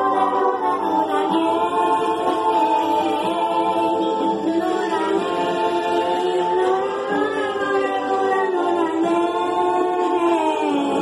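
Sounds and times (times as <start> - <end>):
girl singing into microphone: 0.0 - 11.0
karaoke backing track: 0.0 - 11.0.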